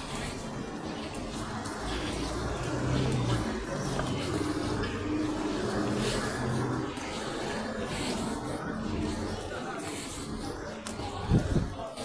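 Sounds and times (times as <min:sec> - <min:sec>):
passers-by: 0:00.0 - 0:12.0
traffic noise: 0:00.0 - 0:12.0.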